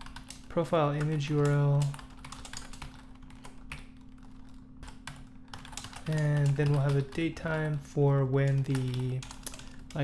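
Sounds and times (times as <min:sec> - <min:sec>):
computer keyboard typing: 0:00.0 - 0:10.0
faint steady hum: 0:00.0 - 0:10.0.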